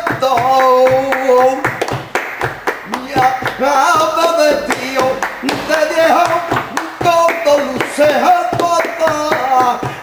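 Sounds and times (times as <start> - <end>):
man singing: 0.0 - 1.9, 2.8 - 10.0
hands clapping a rhythm: 0.0 - 10.0.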